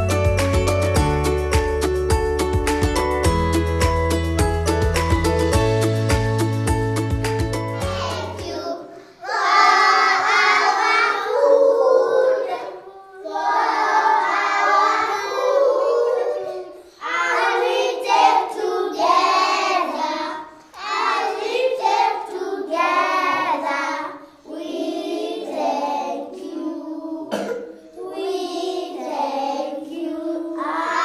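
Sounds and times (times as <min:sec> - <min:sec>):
instrumental music: 0:00.0 - 0:08.7
children singing in unison: 0:07.8 - 0:31.0.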